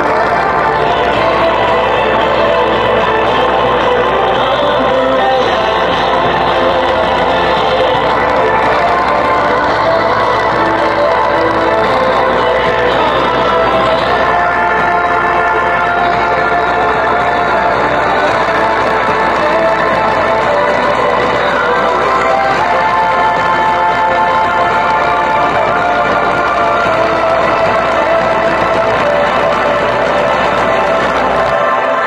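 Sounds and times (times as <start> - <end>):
deep bass line: 0.0 - 31.6
bass-boosted pop music on speaker: 0.0 - 32.0.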